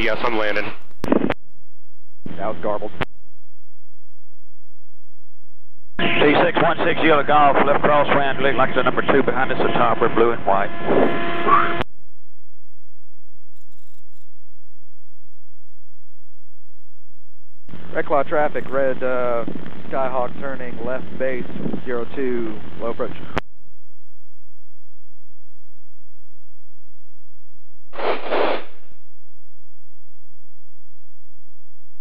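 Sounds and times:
radio static hiss: 0:00.0 - 0:01.4, 0:02.2 - 0:03.1, 0:06.0 - 0:11.8, 0:17.7 - 0:23.4, 0:27.9 - 0:29.0.

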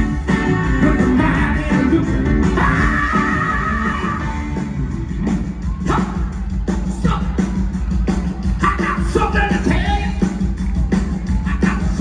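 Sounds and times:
live band playing: 0:00.0 - 0:12.0
drum beat of sharp hits: 0:05.1 - 0:12.0.

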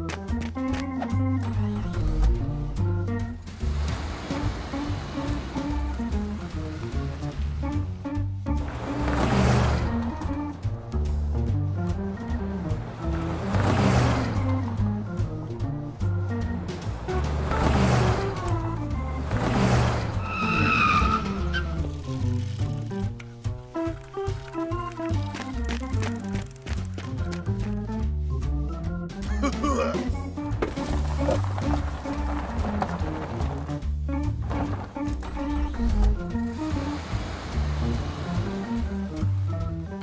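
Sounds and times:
background music: 0:00.0 - 0:40.0
cars driving past: 0:01.7 - 0:07.9, 0:08.6 - 0:22.8, 0:35.3 - 0:39.7
tyre squeal: 0:20.0 - 0:21.9.

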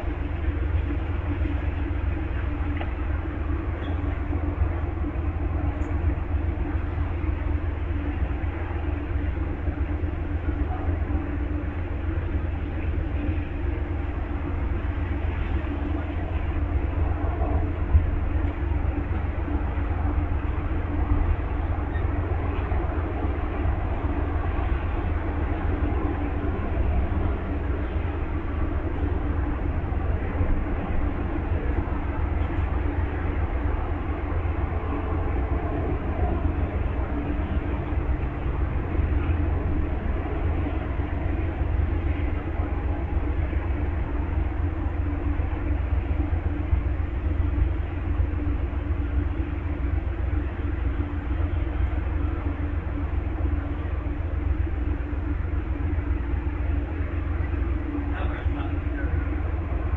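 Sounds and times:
diesel train idling rumble: 0:00.0 - 0:59.9.

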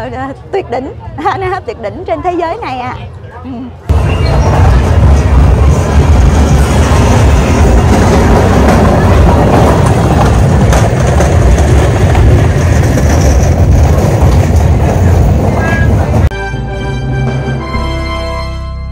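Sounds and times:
crowd noise: 0:00.0 - 0:16.3
heavy deep rumble: 0:03.9 - 0:16.4
festival music: 0:15.8 - 0:18.9
theme tune: 0:16.2 - 0:18.9.

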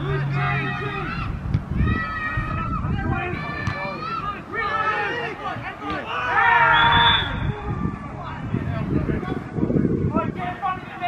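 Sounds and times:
men calling out: 0:02.8 - 0:07.3.

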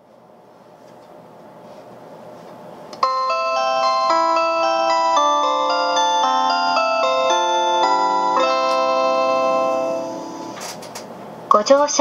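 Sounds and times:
train announcement chime melody: 0:03.0 - 0:10.6.

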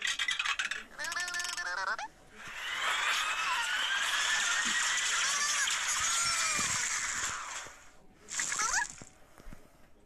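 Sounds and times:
rising cartoon squeaks: 0:00.1 - 0:07.7, 0:08.3 - 0:09.0
gumballs pouring cascade: 0:03.1 - 0:09.1.

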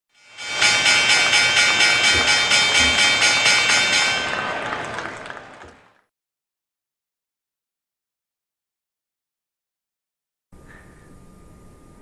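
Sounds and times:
pulsing synthesized chord: 0:00.2 - 0:04.6.

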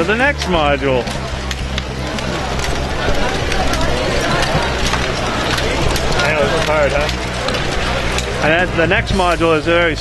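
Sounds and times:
plastic balls clattering: 0:00.0 - 0:09.9
crowd chatter: 0:00.0 - 0:10.0.

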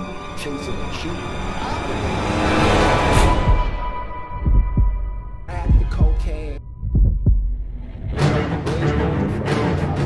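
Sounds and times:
low drone: 0:00.0 - 0:04.4
heartbeat double thumps: 0:04.4 - 0:08.2.

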